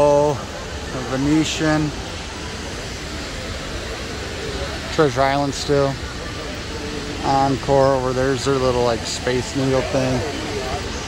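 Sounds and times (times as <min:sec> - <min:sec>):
passing traffic hiss: 0:00.0 - 0:11.0.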